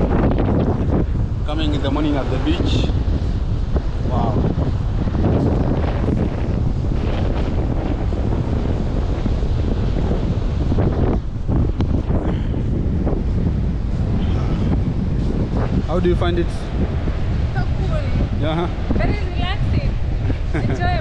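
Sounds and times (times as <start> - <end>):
surf breaking on shore: 0.0 - 21.0
wind buffeting microphone: 0.0 - 21.0.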